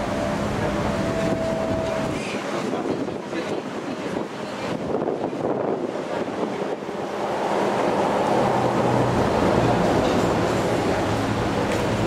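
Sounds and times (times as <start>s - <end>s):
low engine hum: 0.0s - 12.0s
vehicle rumble: 4.9s - 12.0s.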